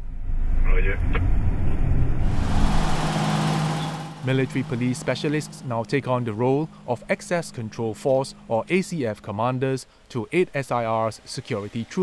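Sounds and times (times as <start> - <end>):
vehicle engine and road rumble: 0.0 - 10.8
person speaking: 4.2 - 12.0.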